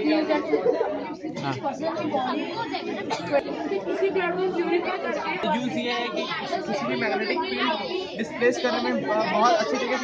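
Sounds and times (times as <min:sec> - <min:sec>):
babble of overlapping voices: 0:00.0 - 0:10.0.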